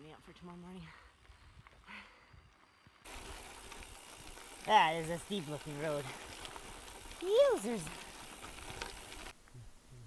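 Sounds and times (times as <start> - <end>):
bicycle rolling on gravel: 0.0 - 9.4.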